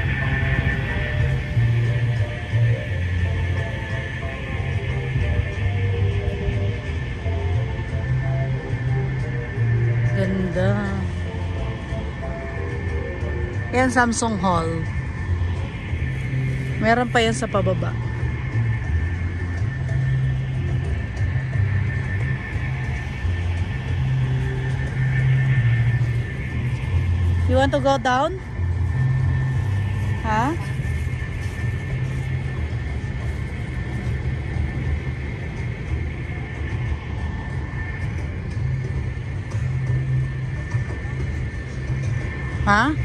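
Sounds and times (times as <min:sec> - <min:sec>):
low rumble of city noise: 0:00.0 - 0:43.0.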